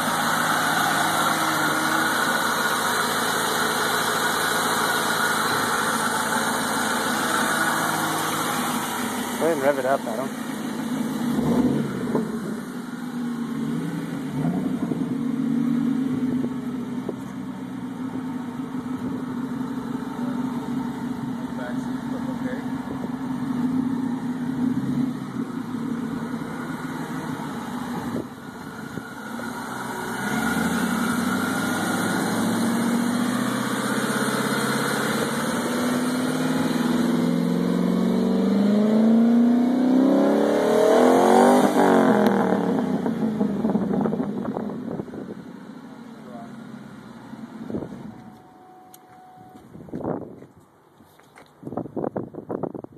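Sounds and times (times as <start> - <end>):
car engine idling and revving: 0.0 - 52.9.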